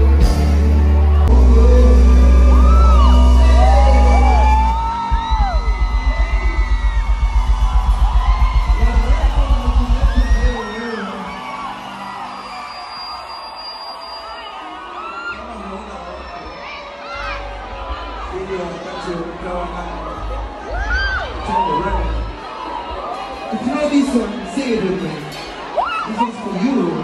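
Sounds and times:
live band music: 0:00.0 - 0:12.2
crowd whooping and whistling: 0:00.8 - 0:15.4.

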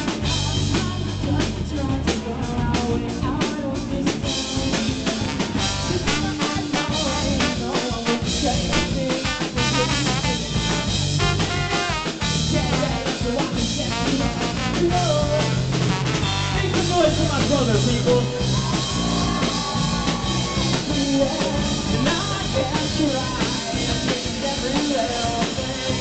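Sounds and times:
rock band playing: 0:00.0 - 0:26.0
trombone playing melody: 0:05.0 - 0:18.0.

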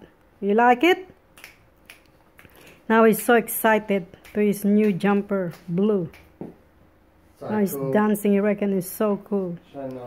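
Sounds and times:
finger snaps: 0:01.3 - 0:03.3.

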